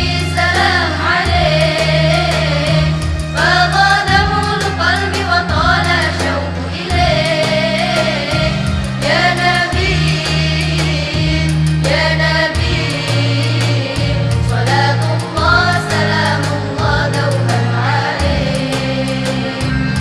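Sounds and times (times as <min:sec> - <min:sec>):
female choir singing: 0:00.0 - 0:19.7.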